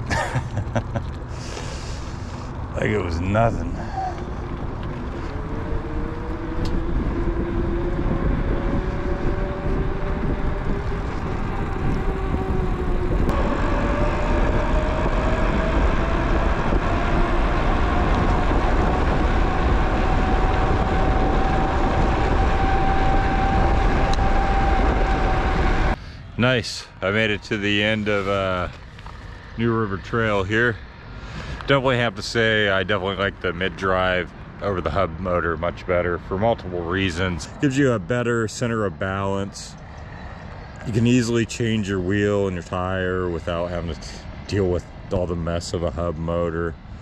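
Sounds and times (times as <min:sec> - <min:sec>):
wind rumble on microphone: 0:00.0 - 0:47.0
electric bike motor whining: 0:04.1 - 0:26.0.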